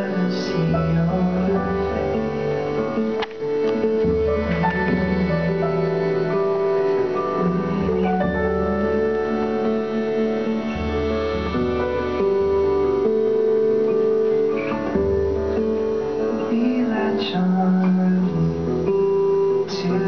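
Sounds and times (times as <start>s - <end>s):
acoustic guitar: 0.0s - 20.0s
electric keyboard: 0.0s - 20.0s.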